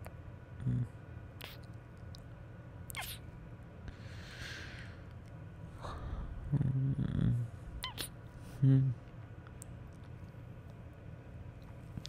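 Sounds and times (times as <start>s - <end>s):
man humming sleepily: 0.6s - 1.0s, 5.8s - 7.6s, 8.5s - 9.0s.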